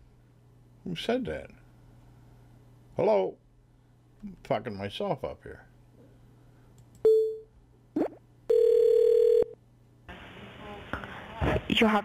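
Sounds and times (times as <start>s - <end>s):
faint phone line hiss: 8.5s - 10.9s.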